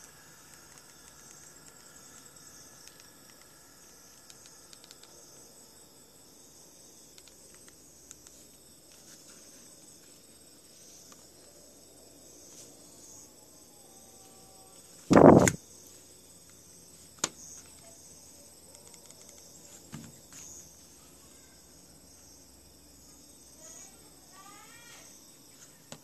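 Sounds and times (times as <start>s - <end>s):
high-pitched insect chirring: 0.0s - 8.4s.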